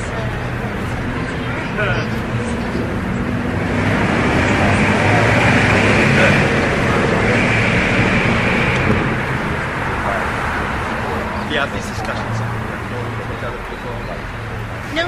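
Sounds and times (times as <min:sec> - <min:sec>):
vehicle passing on street: 0:00.0 - 0:15.0.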